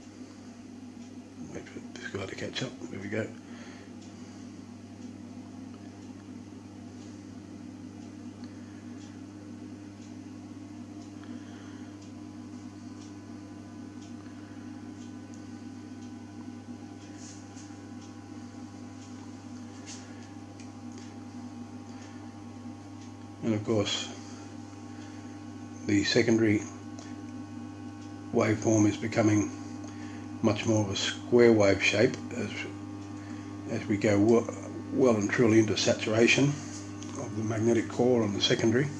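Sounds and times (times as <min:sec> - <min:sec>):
transformer hum: 0:16.4 - 0:38.9.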